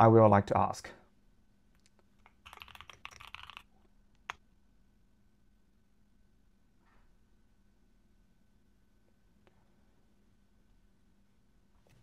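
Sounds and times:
typing on computer keyboard: 1.8s - 4.4s.

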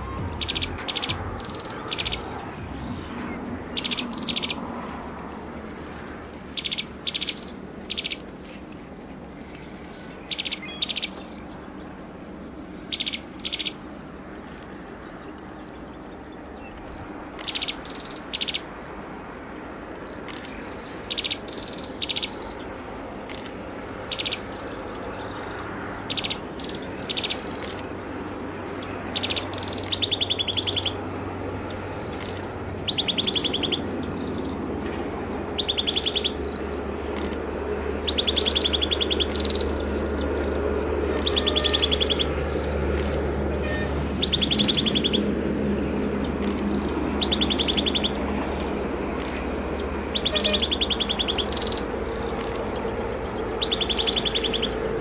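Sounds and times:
bird singing rapid notes: 0.0s - 4.7s, 46.6s - 48.6s, 50.1s - 54.8s
steady low rumble: 0.0s - 6.6s.

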